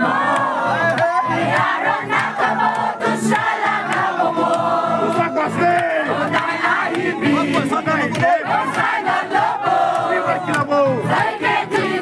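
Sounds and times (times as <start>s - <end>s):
men shouting and chanting: 0.1s - 2.0s, 5.0s - 6.2s.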